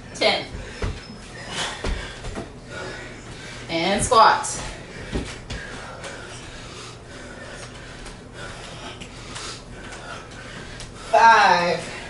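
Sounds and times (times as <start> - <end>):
labored breathing: 0.6 - 3.7, 4.5 - 11.2.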